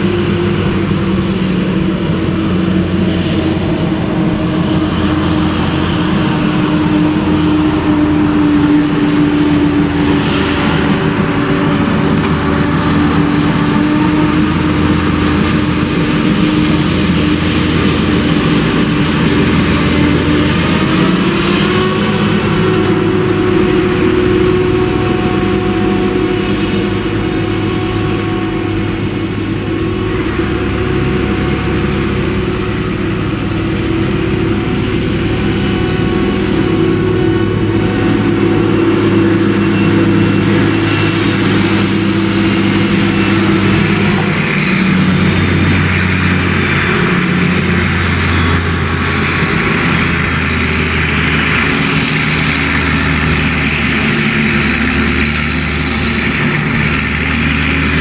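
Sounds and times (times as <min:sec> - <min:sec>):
low throb: 0:00.0 - 0:58.0
tractor engine running: 0:00.0 - 0:58.0
forage harvester chopping: 0:01.9 - 0:31.9, 0:32.5 - 0:58.0.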